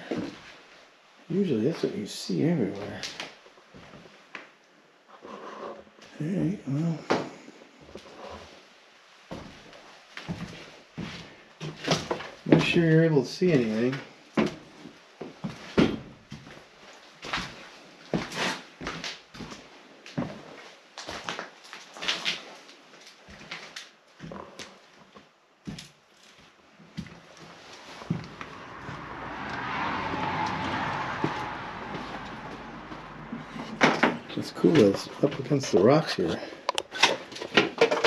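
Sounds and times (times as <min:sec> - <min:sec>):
footsteps on debris-strewn floor: 0:09.3 - 0:12.4, 0:25.0 - 0:28.4
rushing noise: 0:27.6 - 0:34.5.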